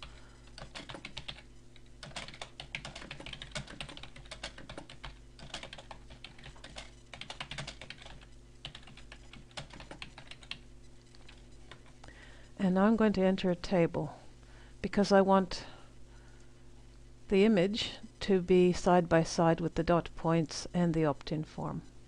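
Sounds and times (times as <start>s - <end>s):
typing on a computer keyboard: 0.5s - 11.9s.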